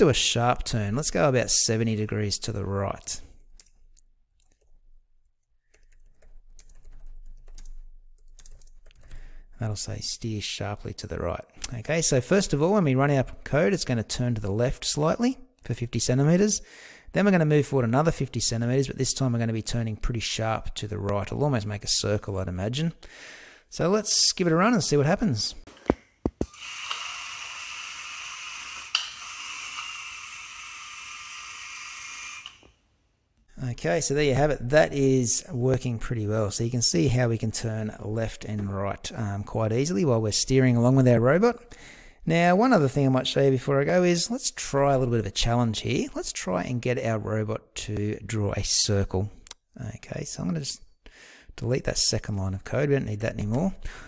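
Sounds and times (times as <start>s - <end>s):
computer keyboard typing: 5.6s - 9.2s.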